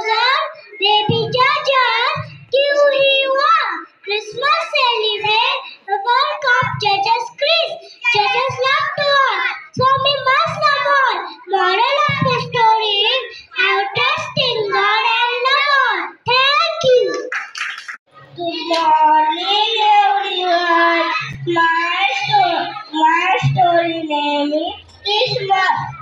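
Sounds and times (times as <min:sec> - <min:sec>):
girl singing into a microphone: 0:09.8 - 0:14.8, 0:18.3 - 0:26.0.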